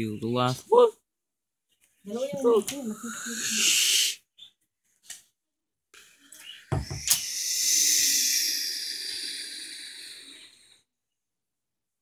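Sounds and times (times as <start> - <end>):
mouth hissing sound: 2.8 - 4.3, 6.0 - 10.8
thump: 6.7 - 7.1.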